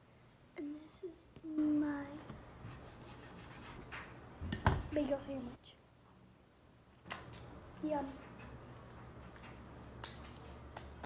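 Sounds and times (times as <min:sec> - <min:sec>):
hands rubbing on table: 0:02.6 - 0:04.1.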